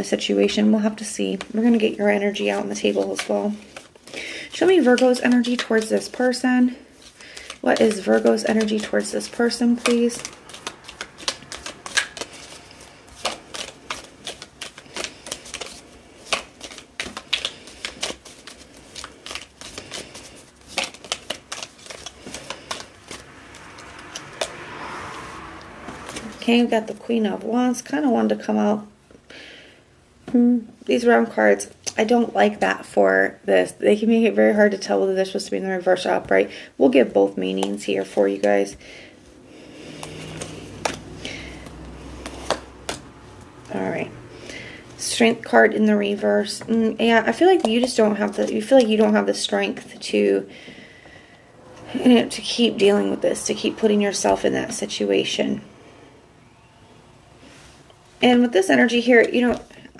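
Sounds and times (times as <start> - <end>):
cards being shuffled: 0.8 - 26.6, 39.6 - 43.8, 45.1 - 49.8
cards brushing: 1.2 - 26.7, 37.5 - 43.6, 45.1 - 49.2
cards tapping on wooden table: 39.9 - 43.1.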